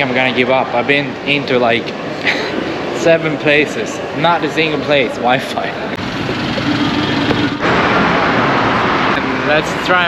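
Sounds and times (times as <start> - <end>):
vehicles driving past: 0.0 - 10.0
rushing noise: 6.0 - 10.0.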